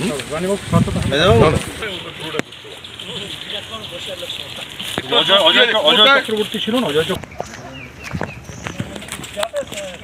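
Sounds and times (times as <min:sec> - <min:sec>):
footsteps on muddy path: 0:00.0 - 0:10.0.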